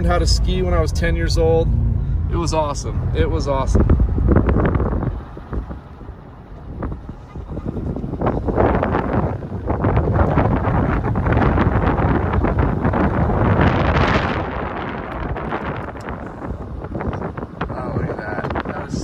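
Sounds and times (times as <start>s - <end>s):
tyre and road noise: 0.0s - 19.0s
wind rushing over microphone: 0.0s - 19.0s.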